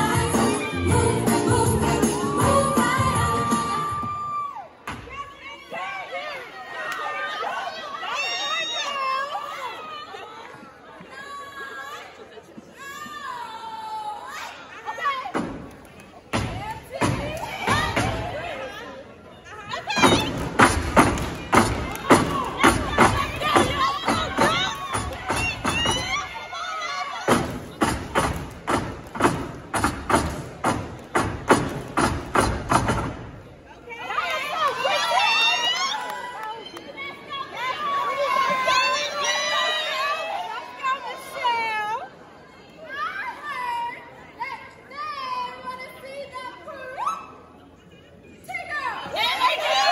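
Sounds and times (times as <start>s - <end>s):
loud rhythmic thumps: 19.9s - 26.2s, 27.3s - 33.4s.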